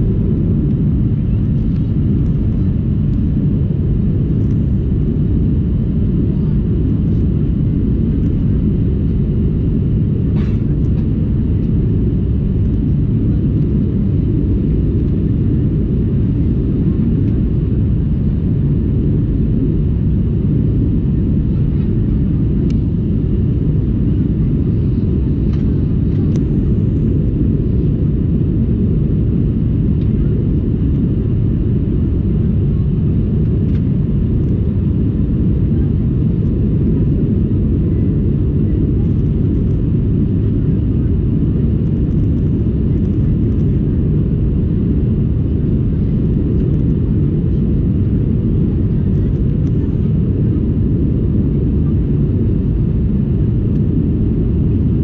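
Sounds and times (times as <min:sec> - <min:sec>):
airplane cabin engine drone: 0:00.0 - 0:55.0.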